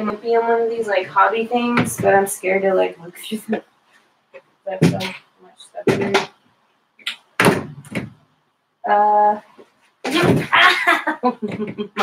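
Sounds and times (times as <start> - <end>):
leg knocking table edge: 7.4 - 8.2.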